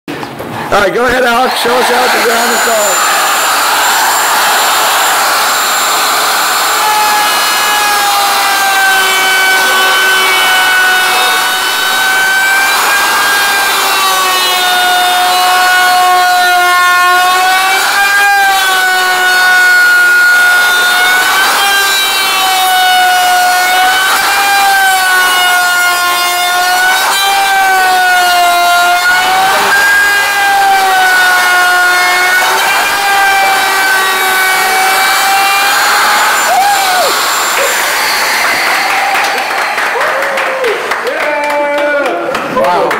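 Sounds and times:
electric router cutting wood: 0.7 - 41.6.

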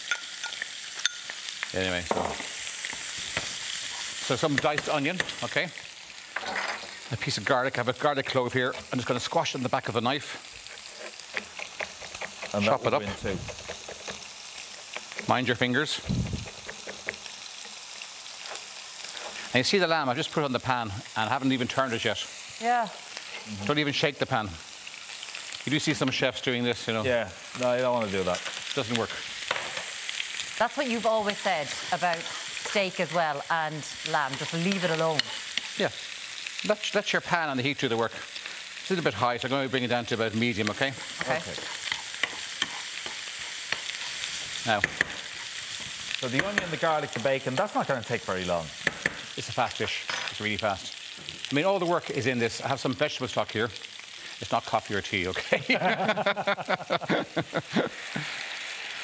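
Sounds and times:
bacon frying: 0.0 - 59.0
meat sizzling in pans: 0.0 - 59.0.

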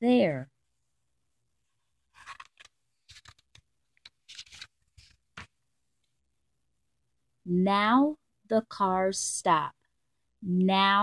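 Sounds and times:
paper page turning: 2.1 - 5.6.

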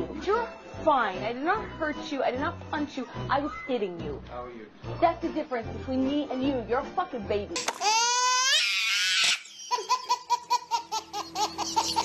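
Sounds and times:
baby laughing: 7.6 - 12.0.

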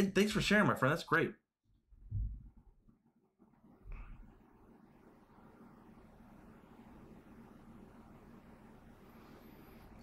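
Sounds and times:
faint room noise: 0.0 - 10.0
soft low thuds: 1.9 - 2.8.

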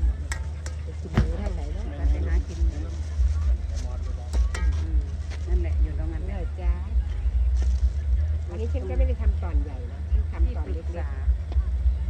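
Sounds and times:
low pulsing rumble: 0.0 - 12.0
woman speaking: 1.0 - 3.0, 4.8 - 7.2, 8.4 - 11.5.

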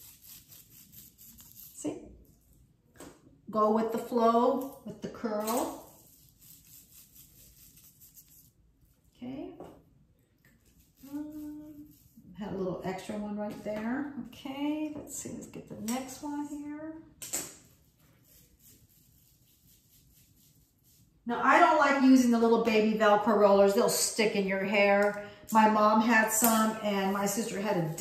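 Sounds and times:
velcro hair roller rustle: 0.0 - 1.9, 5.4 - 8.5.

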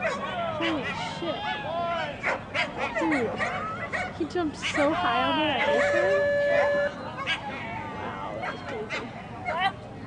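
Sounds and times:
dog yelping: 2.2 - 7.5
dog whining and yipping: 5.6 - 7.4.

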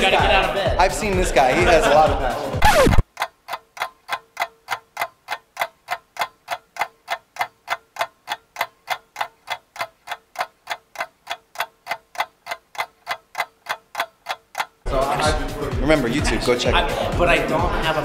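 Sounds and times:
clock ticking: 0.8 - 15.4.

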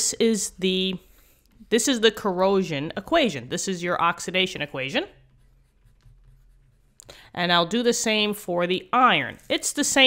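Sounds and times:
stylus scratching on tablet screen: 0.2 - 10.0.

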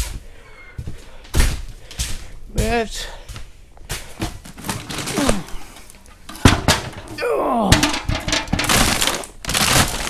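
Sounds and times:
plastic bag crinkling: 4.4 - 10.0
dry kibble rattling: 4.5 - 10.0.

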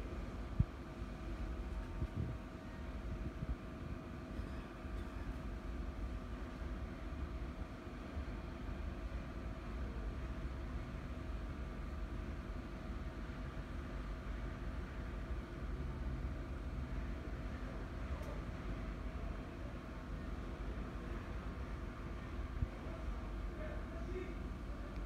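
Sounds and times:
faint steady hum: 0.0 - 25.0.

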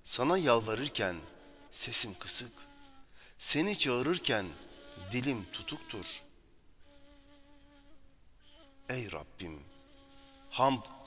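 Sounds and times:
faint buzzing hum: 0.0 - 11.0.

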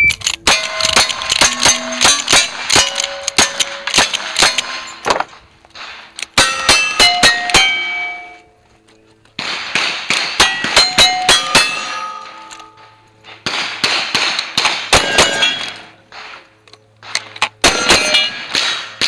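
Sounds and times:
steel plate clanging: 0.2 - 5.4, 6.3 - 8.5, 10.3 - 13.4, 15.0 - 16.0, 17.6 - 19.0
rifle shots: 0.2 - 8.4, 9.4 - 16.4, 17.0 - 19.0.

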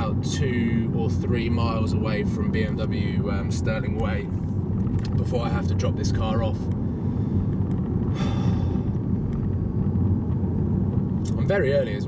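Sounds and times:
car cabin road rumble: 0.0 - 12.0.

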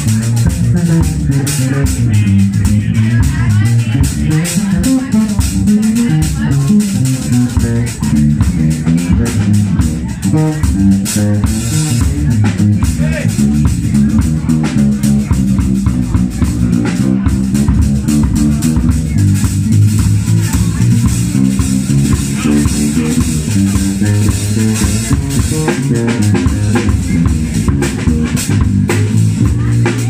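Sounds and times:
drum kit keeping time: 0.0 - 30.0
electric bass line: 0.0 - 30.0.

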